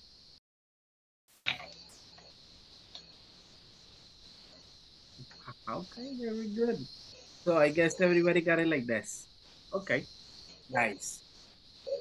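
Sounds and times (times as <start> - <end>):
faint high-pitched hiss: 1.4 - 12.0.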